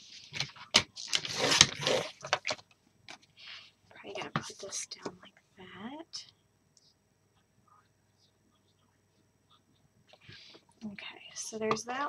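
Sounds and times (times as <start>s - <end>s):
paper rustling: 0.0s - 2.6s.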